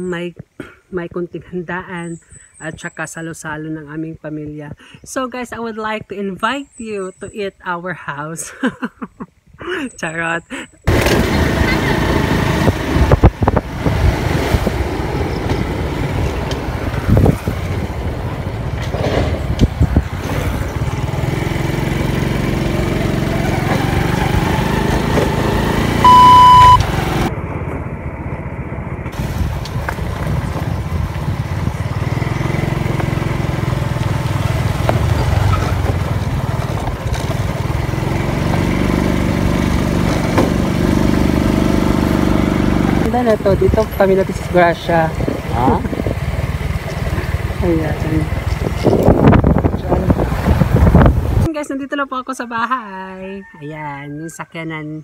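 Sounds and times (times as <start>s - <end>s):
motorcycle engine running: 10.9s - 51.5s
short high beep: 26.0s - 26.8s.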